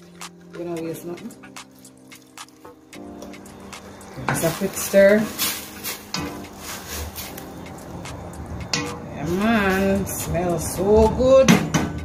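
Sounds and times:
soft background music: 0.0 - 12.0
wooden spoon stirring beans in pot: 2.2 - 7.7.

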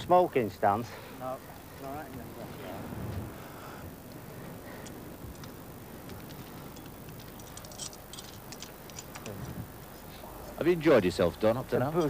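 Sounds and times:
steady background hiss: 0.0 - 12.0
metal climbing hardware clinking: 4.7 - 10.0.

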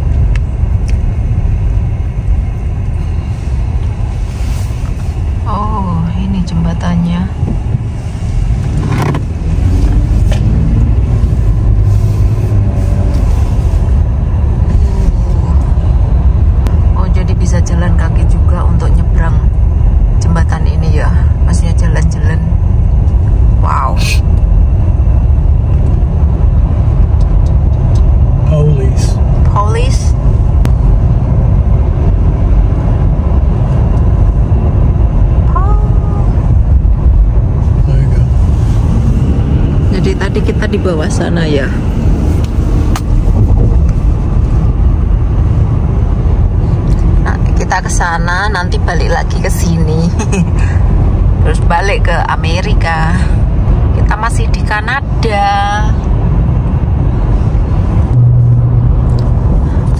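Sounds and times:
car road and engine rumble: 0.0 - 59.9.

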